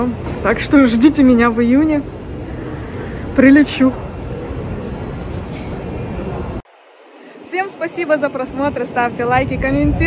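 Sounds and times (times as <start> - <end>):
airport terminal rumble: 0.0 - 10.0.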